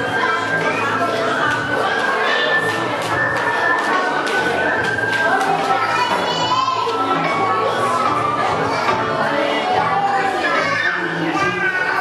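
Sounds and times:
background music: 0.0 - 12.0
children chattering and calling: 0.0 - 12.0.

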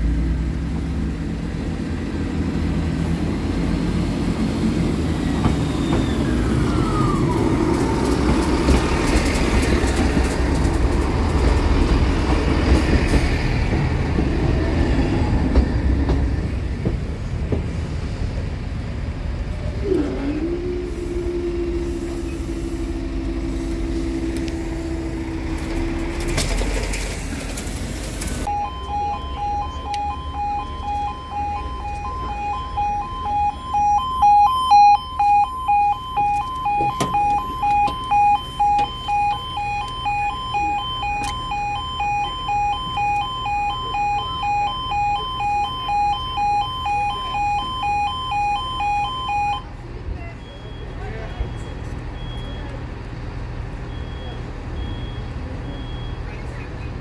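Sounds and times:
level crossing alarm two-tone: 28.5 - 49.7.

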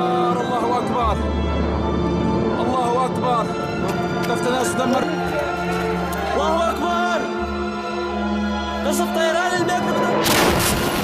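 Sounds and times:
background music: 0.0 - 11.0
loud explosion rumble: 10.2 - 11.0.

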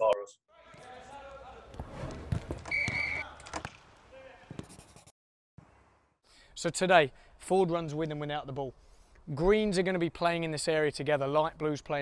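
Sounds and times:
footballs kicked and bouncing: 1.6 - 3.8.

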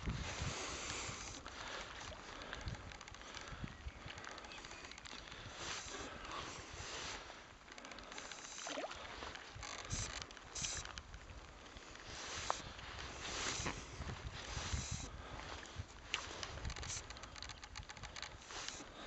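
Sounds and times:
wind rumble on microphone: 0.0 - 7.2, 9.0 - 19.0
paddle splashing in water: 8.2 - 10.0.

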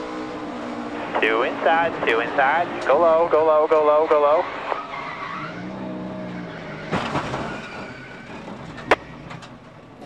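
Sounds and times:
car engine drone: 0.0 - 10.0
tyres skidding: 0.0 - 10.0
car crashing into wall: 6.8 - 9.0.

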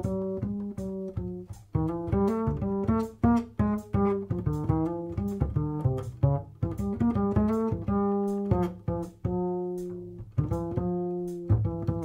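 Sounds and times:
double bass plucked: 0.0 - 12.0.

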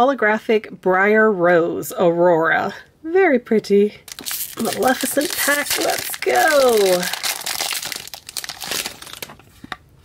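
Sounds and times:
foil wrapper crinkling: 4.1 - 9.7.

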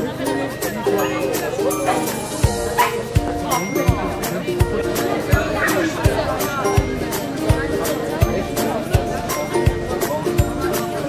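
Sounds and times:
background music with steady beat: 0.0 - 11.0
small dog barking: 2.8 - 3.0.

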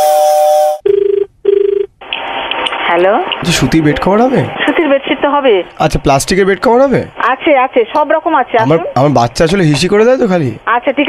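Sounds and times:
jingle held tones: 0.0 - 0.8
telephone ringback tone: 0.0 - 1.9.

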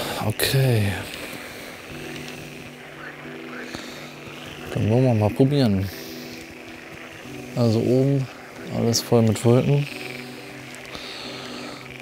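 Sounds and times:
faint outdoor background noise: 0.0 - 12.0
low multi-tone hum: 0.0 - 12.0.

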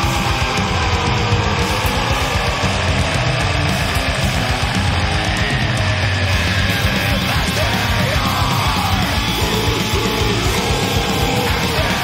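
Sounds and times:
death metal band playing: 0.0 - 12.0
harsh shouted vocals: 0.0 - 12.0.

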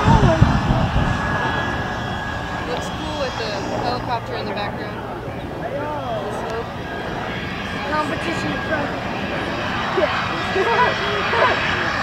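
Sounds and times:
bystanders' voices: 0.0 - 12.0
distant engine noise: 0.0 - 12.0.

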